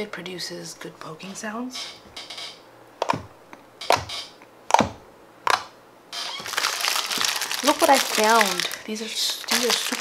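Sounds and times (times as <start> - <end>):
dense crinkling: 6.3 - 10.0.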